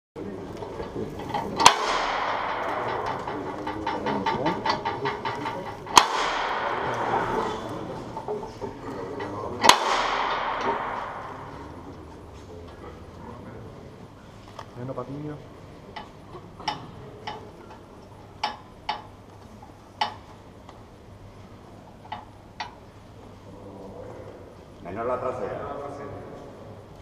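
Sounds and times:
metal door-knocker knocks echoing: 0:01.2 - 0:08.0, 0:09.6 - 0:11.9.

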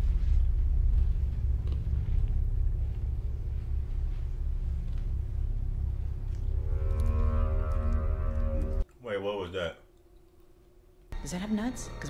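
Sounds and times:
deep low drone: 0:00.0 - 0:08.8
long held note: 0:05.7 - 0:08.8.

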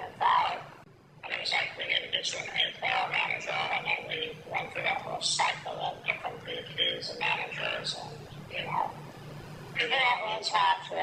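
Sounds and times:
person talking over phone line: 0:00.0 - 0:09.0, 0:09.8 - 0:11.0.

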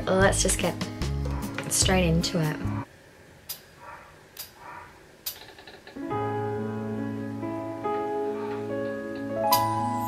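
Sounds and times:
muffled dog barking: 0:01.3 - 0:01.6, 0:03.8 - 0:05.0
small sharp clicks: 0:05.2 - 0:06.0.

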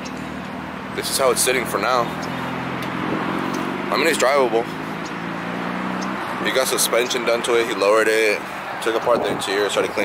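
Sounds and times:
car engine idling: 0:00.0 - 0:10.0
outdoor background noise: 0:00.0 - 0:10.0.

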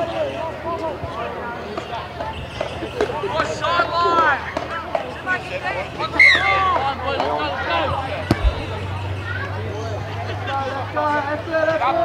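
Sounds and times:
chatter of voices: 0:00.0 - 0:12.0
boot kicking ball thud: 0:08.2 - 0:08.9.

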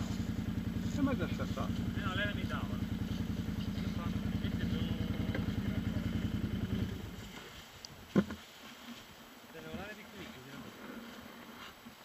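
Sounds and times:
quad bike engine idling: 0:00.0 - 0:07.6.

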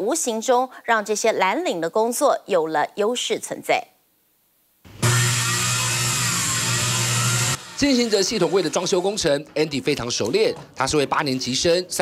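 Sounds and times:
power tool motor humming: 0:04.9 - 0:08.4.

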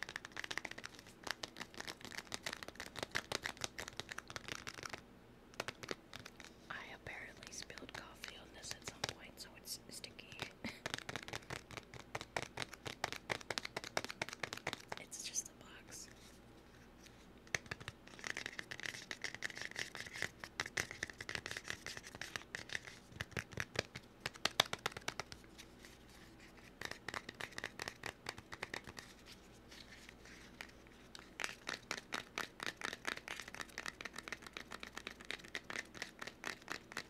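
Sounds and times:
scratching and tapping: 0:00.0 - 0:09.3, 0:10.2 - 0:16.2, 0:17.4 - 0:37.0
soft whispering: 0:06.7 - 0:10.9, 0:14.9 - 0:16.4.

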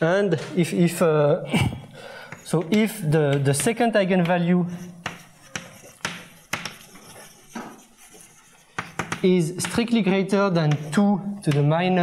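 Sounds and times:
chalk scratching on blackboard: 0:02.3 - 0:11.0
chalk tapping on blackboard: 0:02.3 - 0:11.7.

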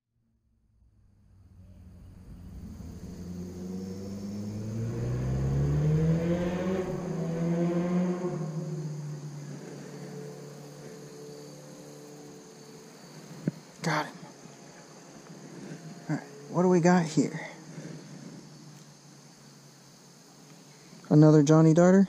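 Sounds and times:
vehicle engine passing by: 0:01.0 - 0:20.8.

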